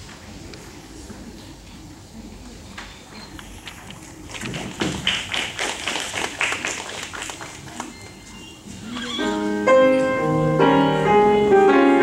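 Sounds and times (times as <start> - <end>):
footsteps on stage: 3.7 - 10.2
grand piano chords: 9.2 - 12.0.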